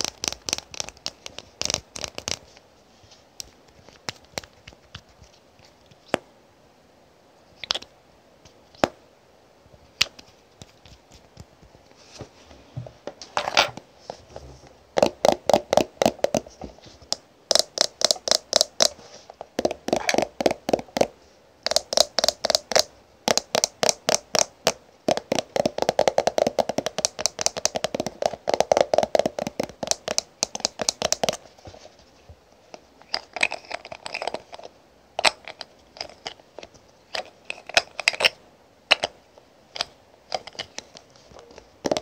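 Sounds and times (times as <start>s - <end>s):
fingernails tapping plastic tube: 19.6s - 31.4s.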